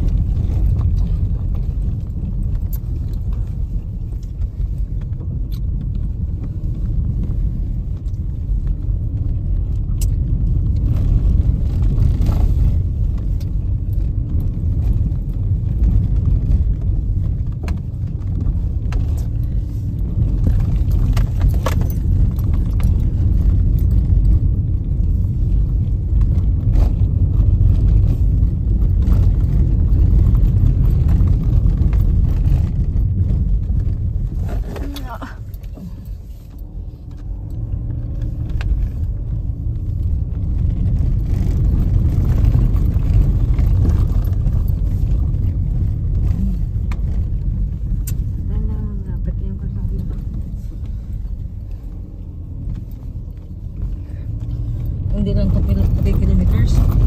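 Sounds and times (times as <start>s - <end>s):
vehicle road and wind noise: 0.0s - 57.0s.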